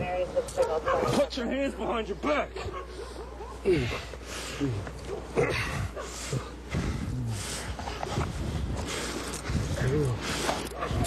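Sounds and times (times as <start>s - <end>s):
heavy breathing: 2.8s - 11.0s
man grunting and groaning: 3.6s - 7.6s.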